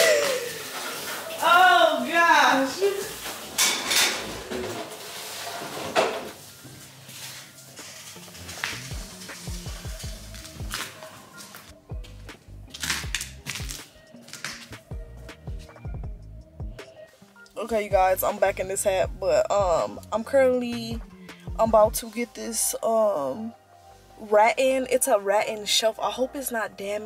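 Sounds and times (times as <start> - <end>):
woman vocalising: 0.0 - 0.8
background music with low beat: 6.5 - 27.0.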